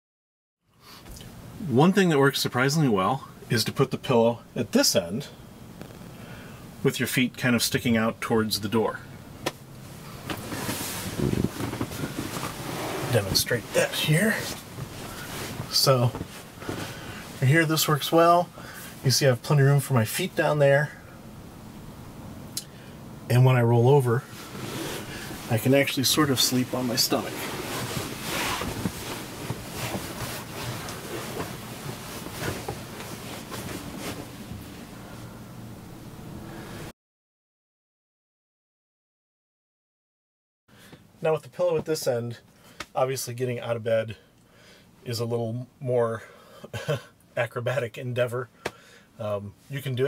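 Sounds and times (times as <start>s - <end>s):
rustling on bed cushions: 10.2s - 17.8s, 24.2s - 35.0s.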